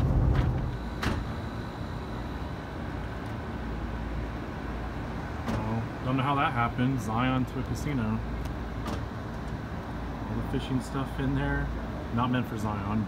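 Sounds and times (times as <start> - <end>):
car cabin road rumble: 0.0 - 1.7.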